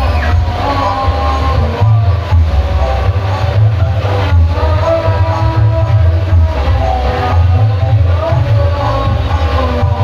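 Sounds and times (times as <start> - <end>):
loud music with pulsing bass: 0.0 - 10.0.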